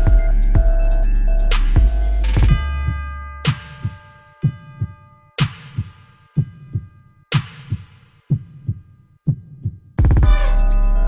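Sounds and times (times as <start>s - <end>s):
heartbeat double thumps: 0.0s - 5.0s, 5.7s - 10.5s.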